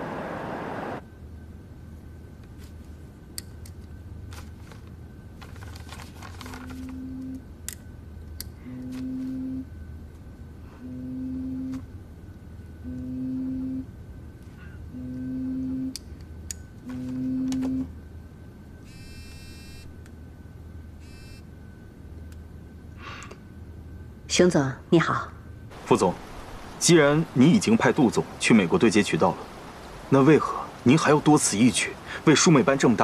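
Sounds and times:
papers rustling: 0:04.3 - 0:07.0.

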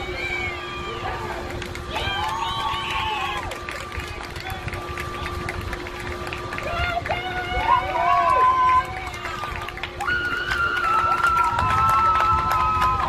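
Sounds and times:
girls calling and shouting: 0:00.0 - 0:03.5
faint hum: 0:00.0 - 0:13.0.

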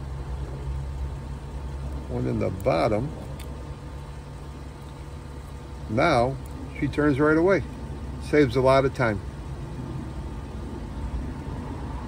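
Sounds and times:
engine idling hum: 0:00.0 - 0:12.0.

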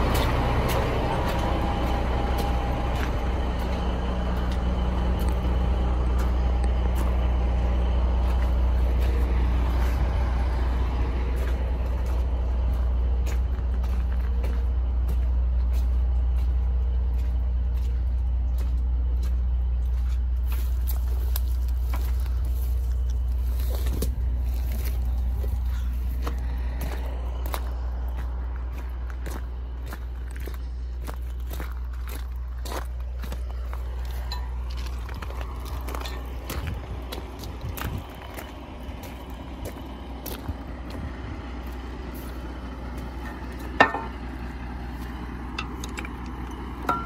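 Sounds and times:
footsteps crunching on gravel: 0:00.0 - 0:47.0
vehicle engine idling: 0:00.0 - 0:47.0.

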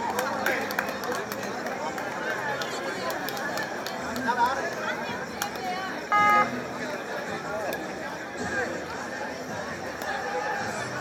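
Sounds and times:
crowd chatter: 0:00.0 - 0:11.0
short loud beep: 0:06.1 - 0:06.6.

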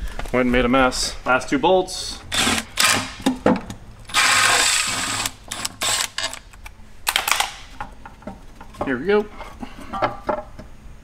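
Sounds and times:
cordless power tool spinning: 0:04.1 - 0:06.2.

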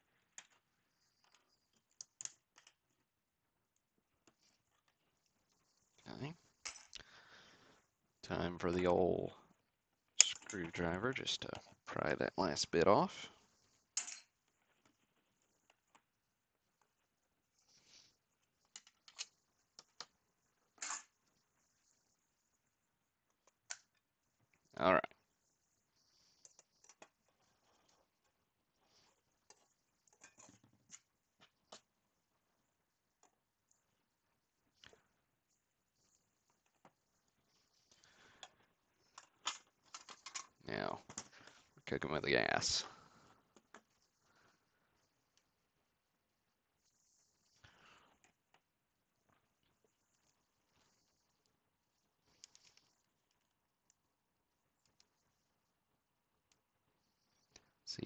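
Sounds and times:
plastic clicks and scrapes: 0:37.8 - 0:41.6.

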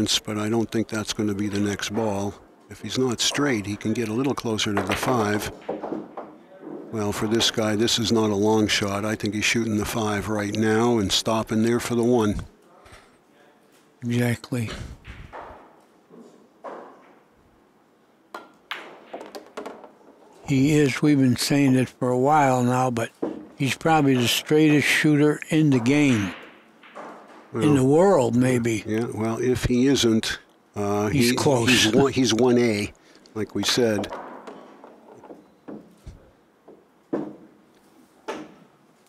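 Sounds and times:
pool balls clacking: 0:00.0 - 0:12.3, 0:15.0 - 0:17.4, 0:18.3 - 0:30.3, 0:31.2 - 0:38.8
pool balls clicking together: 0:01.8 - 0:08.1, 0:18.3 - 0:20.4, 0:23.1 - 0:27.6, 0:33.3 - 0:36.0.

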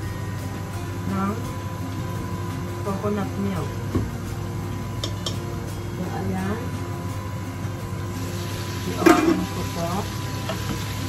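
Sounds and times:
food sizzling in a frying pan: 0:08.1 - 0:11.0.

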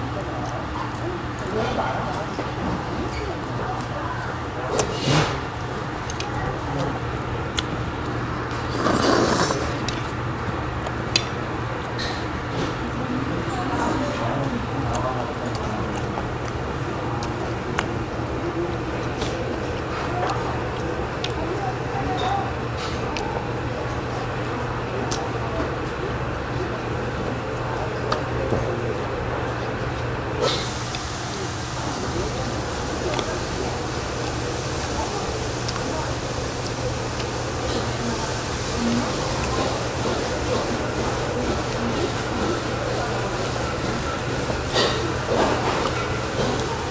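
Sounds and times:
chewing: 0:05.9 - 0:26.6, 0:31.9 - 0:46.9.

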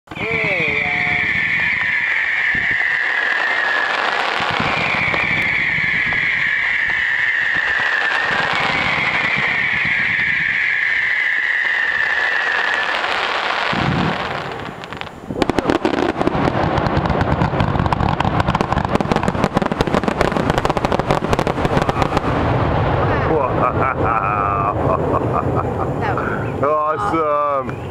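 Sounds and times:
firework whistles: 0:00.1 - 0:24.0, 0:26.2 - 0:27.9
firework crackling pops: 0:01.0 - 0:22.8
person laughing: 0:23.1 - 0:26.4.

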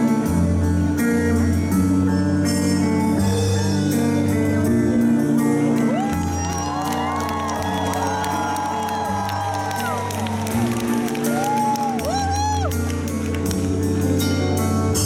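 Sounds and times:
live band playing slow song: 0:00.0 - 0:15.0
audience whooping and cheering: 0:05.8 - 0:13.5.

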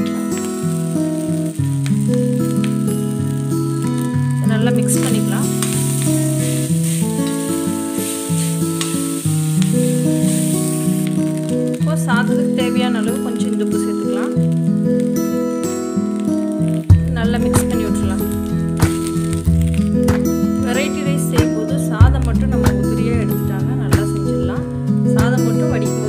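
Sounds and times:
frying pan sizzling: 0:00.0 - 0:26.0
instrumental music with held notes: 0:00.0 - 0:26.0.

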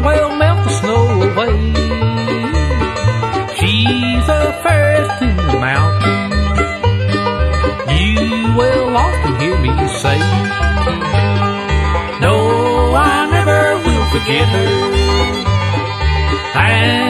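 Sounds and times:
banjo: 0:00.0 - 0:17.0
bass keeping a steady beat: 0:00.0 - 0:17.0
guitar: 0:00.0 - 0:17.0
sliding lead melody: 0:00.0 - 0:17.0.

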